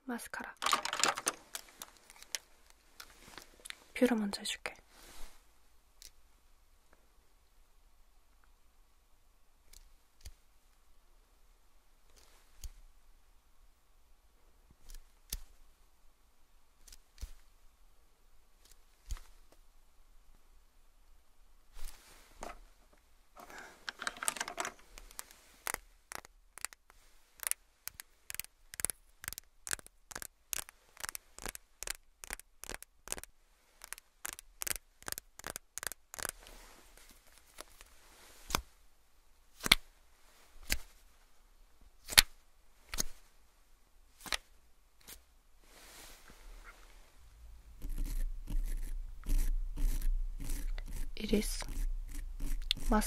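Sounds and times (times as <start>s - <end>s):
mascara tube rustling: 0.5s - 3.6s, 23.4s - 38.7s, 47.4s - 53.0s
mascara tube clicking: 24.2s - 36.4s.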